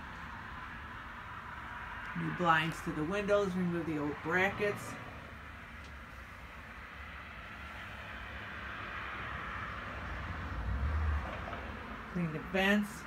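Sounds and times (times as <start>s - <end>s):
road vehicle passing by: 0.0s - 13.0s.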